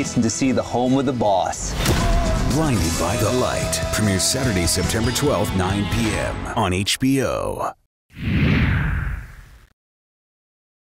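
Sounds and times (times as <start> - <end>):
transition whoosh: 8.2 - 9.7.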